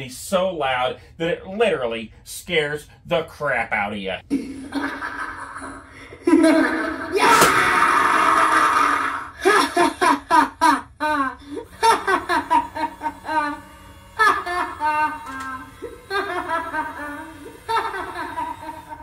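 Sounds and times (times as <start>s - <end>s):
cackling giggling laugh: 4.3s - 7.2s, 8.2s - 19.0s.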